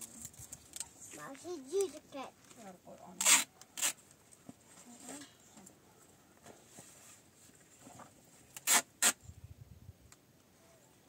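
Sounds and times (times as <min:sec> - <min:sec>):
child's voice: 0:01.1 - 0:03.2
adhesive tape pulled off roll: 0:03.2 - 0:04.0, 0:08.5 - 0:09.2.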